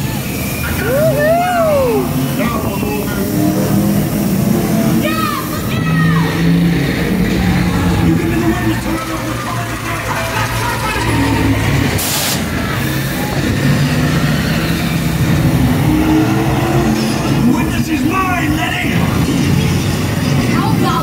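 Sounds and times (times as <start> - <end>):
car engines revving: 0.0 - 21.0
steady rumble: 0.0 - 21.0
sharp hiss of air: 12.0 - 13.2.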